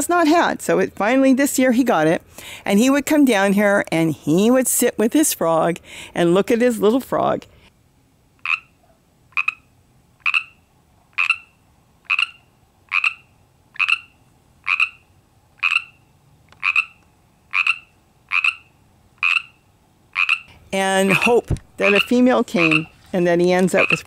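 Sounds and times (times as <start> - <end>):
frog croaking: 8.4 - 23.0, 23.6 - 24.0.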